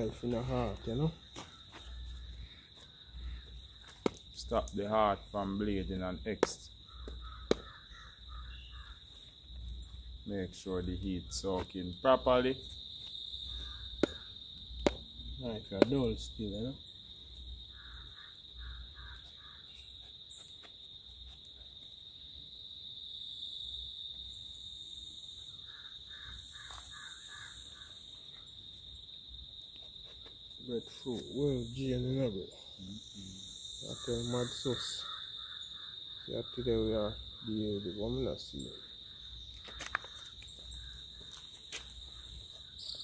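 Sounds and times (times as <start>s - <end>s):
man speaking: 0.0s - 1.2s, 4.4s - 6.7s, 10.3s - 12.6s, 15.4s - 16.8s, 30.6s - 35.1s, 36.3s - 38.8s
crickets trilling: 0.0s - 43.0s
high insect whine: 0.0s - 43.0s
bird cawing: 1.6s - 4.0s, 6.8s - 9.2s, 13.4s - 14.4s, 17.7s - 19.9s, 25.6s - 28.2s, 32.9s - 36.3s, 38.8s - 41.4s
knife striking fruit: 14.0s - 15.0s.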